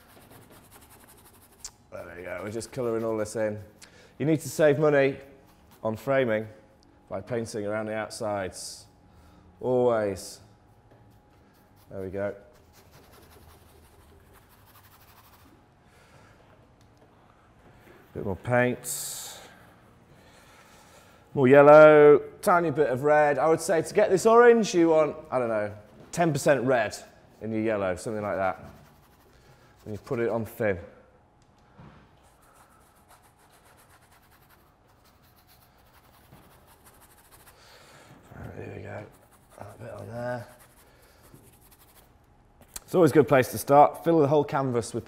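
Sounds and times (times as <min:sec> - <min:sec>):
paintbrush scrubbing on canvas: 0:00.0 - 0:03.7, 0:11.2 - 0:15.6, 0:28.0 - 0:30.3, 0:32.3 - 0:37.7, 0:38.9 - 0:42.1.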